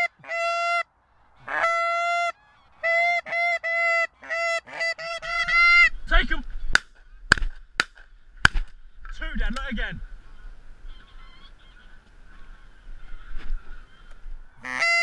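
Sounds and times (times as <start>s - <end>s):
goose honking: 0.0s - 6.2s, 10.2s - 15.0s.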